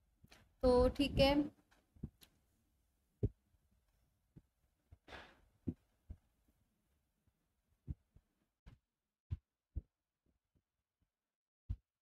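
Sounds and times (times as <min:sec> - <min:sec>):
soft clicks and thumps: 0:00.2 - 0:02.4.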